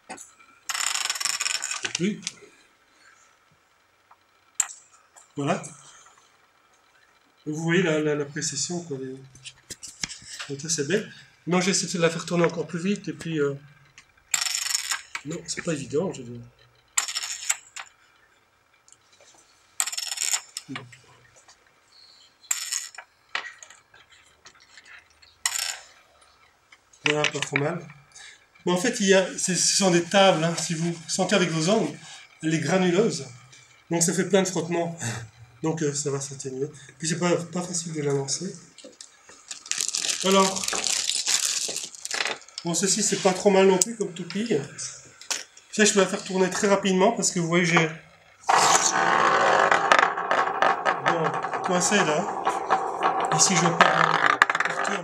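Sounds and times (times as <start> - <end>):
spinning top scraping and rattling: 0.6 - 2.4, 11.8 - 18.1, 19.2 - 21.1, 22.4 - 26.1, 26.9 - 34.7, 38.4 - 43.6, 45.2 - 55.0
spinning top clattering on table: 0.7 - 2.4, 14.3 - 15.7, 16.9 - 18.0, 19.8 - 20.9, 22.5 - 26.0, 48.5 - 55.0.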